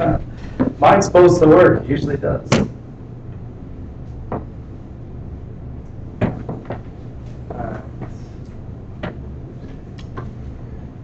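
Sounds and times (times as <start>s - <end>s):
low electrical hum: 0.0s - 11.0s
sharp knocks and bumps: 6.2s - 6.9s, 9.0s - 9.3s.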